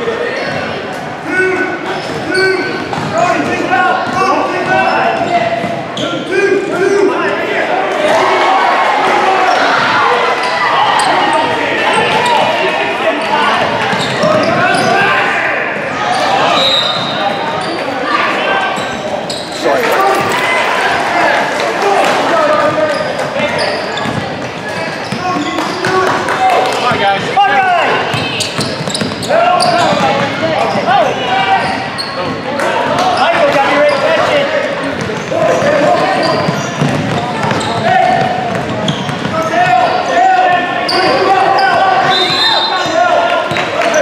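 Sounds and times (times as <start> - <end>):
people shouting and calling out: 0.0 - 24.1, 24.7 - 28.6, 29.2 - 44.0.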